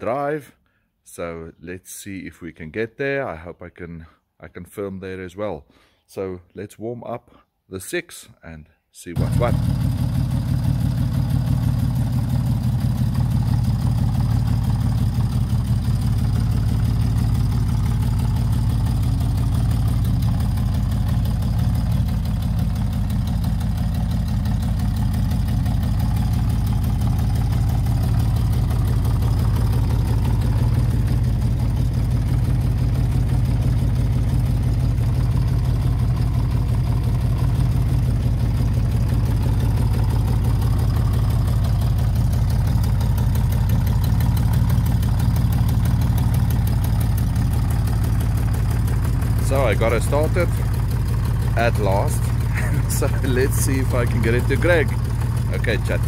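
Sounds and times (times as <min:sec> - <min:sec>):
motorcycle engine idling: 0:09.2 - 0:56.0.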